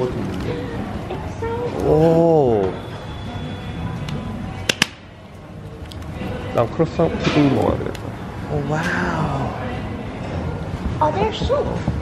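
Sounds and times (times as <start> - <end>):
cafe background noise: 0.0 - 12.0
faint music: 0.0 - 12.0.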